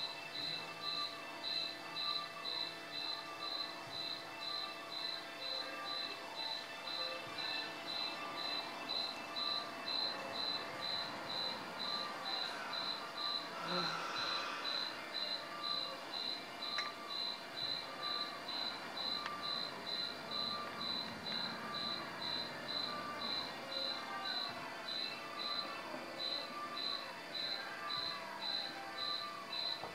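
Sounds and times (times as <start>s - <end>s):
cricket chirping: 0.0s - 29.9s.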